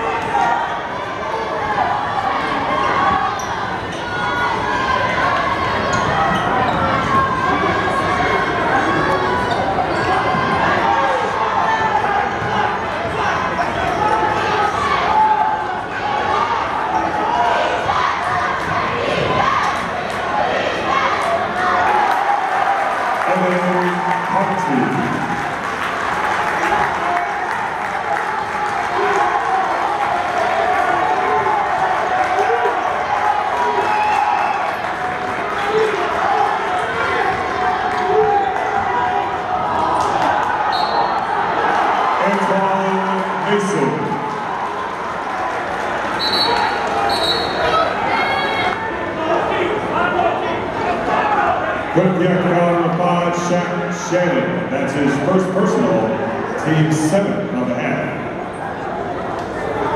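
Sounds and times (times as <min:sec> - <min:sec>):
crowd voices and shouts: 0:00.0 - 0:59.9.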